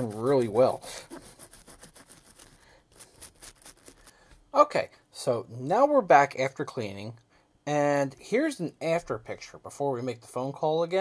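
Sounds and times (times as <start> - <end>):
toothbrush scrubbing speaker grill: 0.0 - 4.2.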